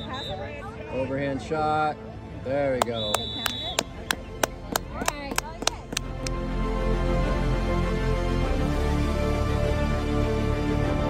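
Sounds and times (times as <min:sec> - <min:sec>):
hand claps: 0:02.8 - 0:06.4.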